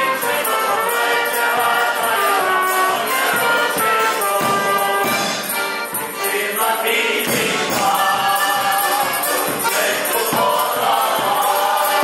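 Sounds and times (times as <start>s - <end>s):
accordion playing: 0.0s - 12.0s
people singing along: 0.0s - 12.0s
tambourine beat: 0.0s - 12.0s
man singing: 6.2s - 12.0s.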